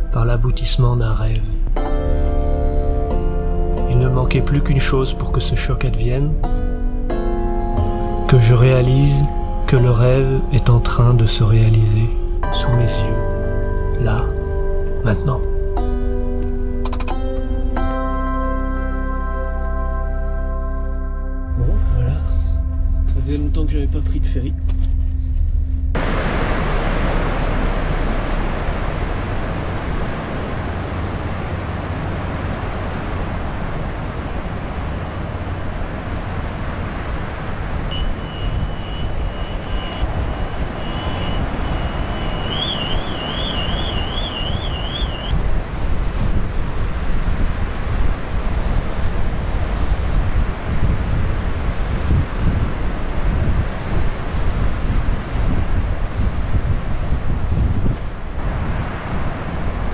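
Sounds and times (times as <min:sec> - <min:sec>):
ship low rumble: 0:00.0 - 0:59.9
wind buffeting microphone: 0:25.9 - 0:59.9
water churning along hull: 0:26.0 - 0:59.9
high warbling tone: 0:37.9 - 0:45.4.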